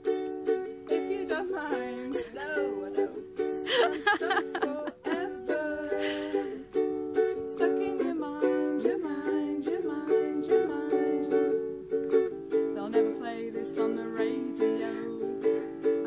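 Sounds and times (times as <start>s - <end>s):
ukulele strumming: 0.0s - 16.0s.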